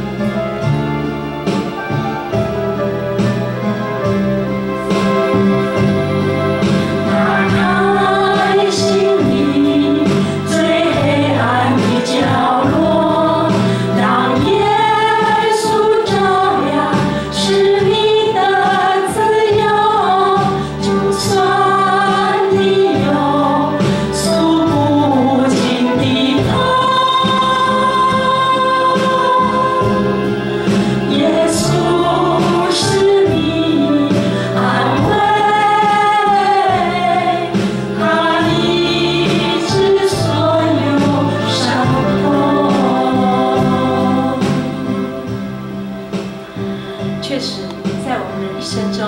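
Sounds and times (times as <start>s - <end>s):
women singing worship song: 6.6s - 45.6s.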